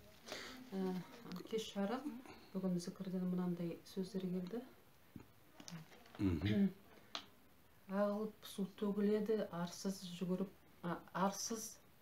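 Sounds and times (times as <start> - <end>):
woman speaking: 0.0 - 4.8, 7.9 - 11.9.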